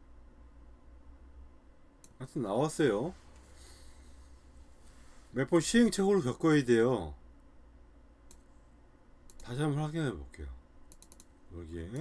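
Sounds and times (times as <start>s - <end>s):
faint low hum: 0.0s - 12.0s
computer mouse click: 2.0s - 2.2s, 8.2s - 8.5s, 9.3s - 9.6s, 10.9s - 11.3s.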